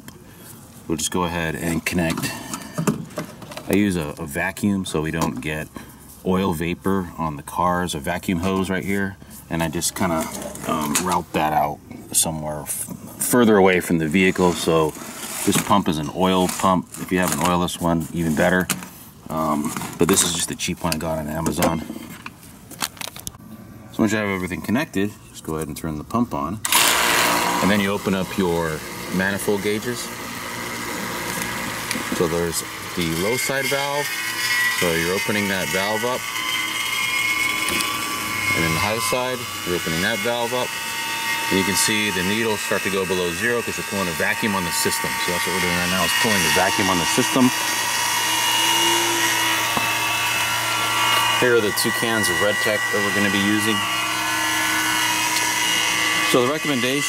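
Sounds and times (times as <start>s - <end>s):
vacuum pump running: 8.4s - 21.9s, 26.6s - 57.0s.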